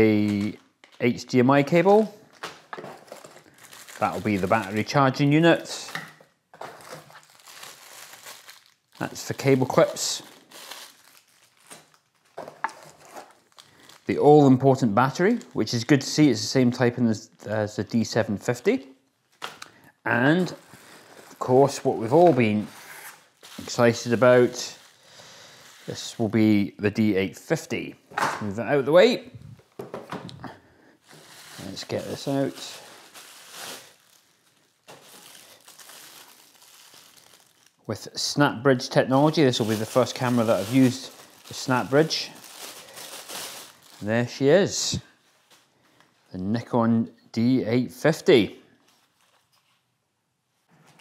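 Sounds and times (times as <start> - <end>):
plastic bags crinkling: 0.0 - 15.8, 19.3 - 26.3, 29.0 - 37.9, 39.1 - 44.6.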